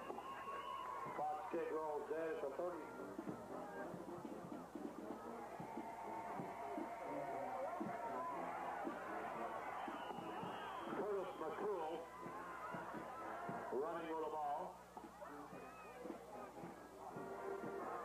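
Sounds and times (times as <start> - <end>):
crowd talking and calling out: 0.0 - 18.0.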